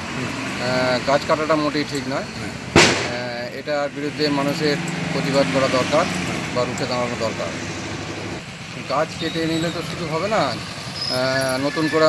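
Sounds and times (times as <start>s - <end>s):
road traffic noise: 0.0s - 12.0s
man speaking: 3.1s - 3.8s.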